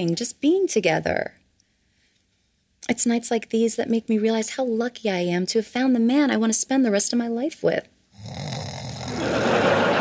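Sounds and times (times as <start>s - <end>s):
man snoring: 8.2s - 9.5s
audience laughter: 9.1s - 10.0s.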